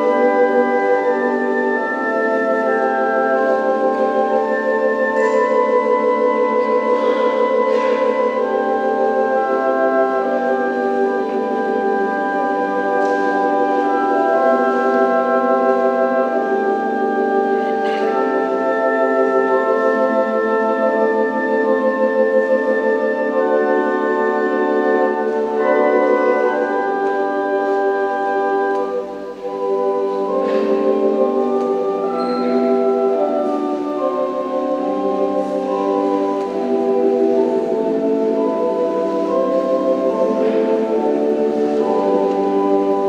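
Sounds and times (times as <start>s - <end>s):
church organ playing chords: 0.0s - 43.0s.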